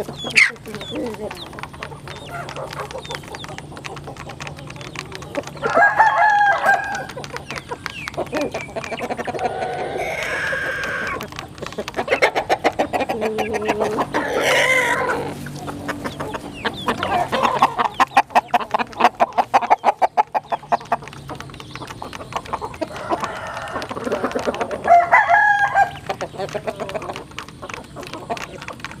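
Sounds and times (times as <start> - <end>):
beaks tapping plastic trough: 0.0 - 29.0
chickens clucking: 0.0 - 29.0
rooster crowing: 5.6 - 7.1, 9.4 - 11.2, 14.2 - 15.4, 22.9 - 26.0.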